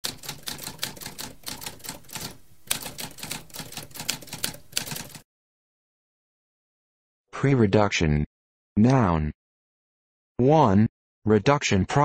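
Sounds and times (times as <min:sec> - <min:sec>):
typewriter typing: 0:00.0 - 0:05.2.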